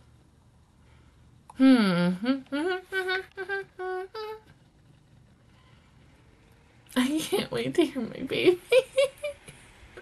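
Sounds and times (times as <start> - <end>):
woman humming a tune: 1.6 - 4.5.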